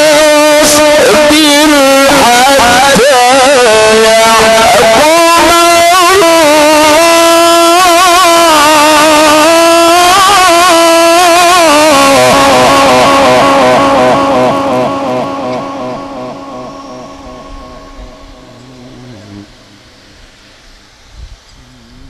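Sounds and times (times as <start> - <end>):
man chanting with echo: 0.0 - 19.8.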